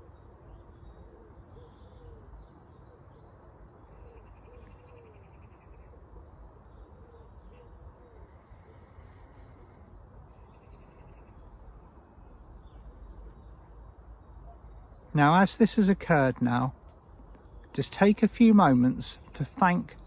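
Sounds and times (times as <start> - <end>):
soft low arching calls: 0.0 - 17.7.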